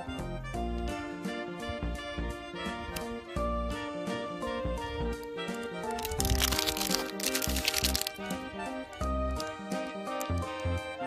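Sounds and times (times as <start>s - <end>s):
background music: 0.0s - 11.0s
plastic wrapper crinkling: 5.8s - 9.6s, 10.2s - 10.7s.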